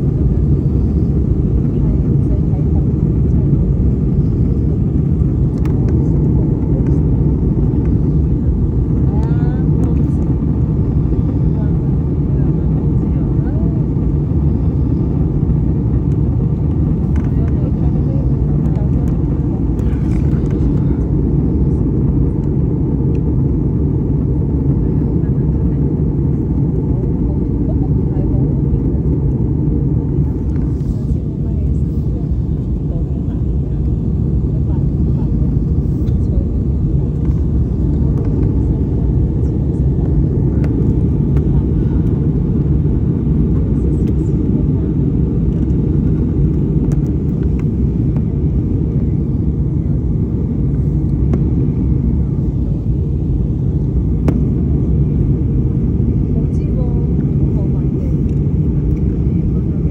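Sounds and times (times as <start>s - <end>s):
airliner cabin engine roar: 0.0s - 59.9s.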